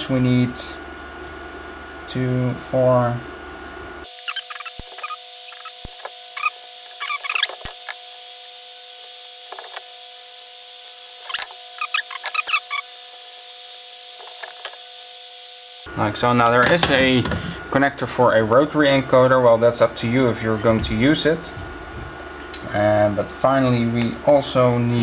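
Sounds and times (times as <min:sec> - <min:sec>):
faint steady hum: 0:00.0 - 0:25.0.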